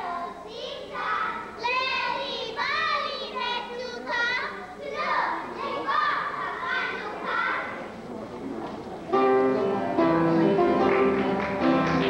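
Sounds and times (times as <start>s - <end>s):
children's high-pitched voices: 0.0s - 7.9s.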